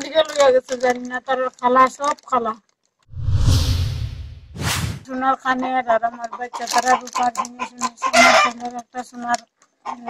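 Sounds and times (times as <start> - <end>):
deep whoosh: 3.1 - 5.1
short sharp swish: 3.1 - 5.1.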